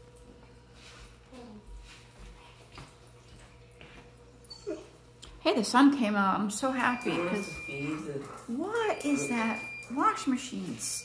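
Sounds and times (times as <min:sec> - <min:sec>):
dog whining: 0:04.4 - 0:05.0, 0:07.0 - 0:09.9.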